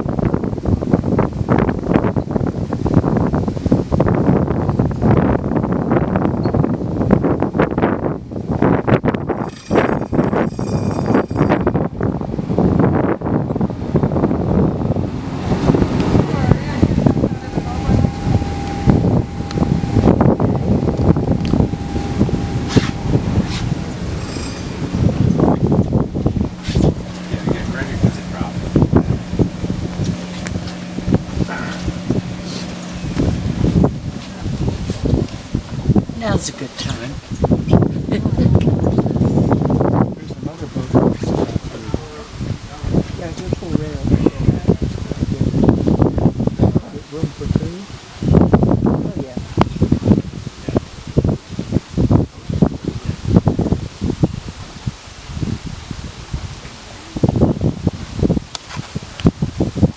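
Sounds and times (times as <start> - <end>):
boat engine humming: 0.0 - 59.9
wind buffeting microphone: 0.0 - 59.9.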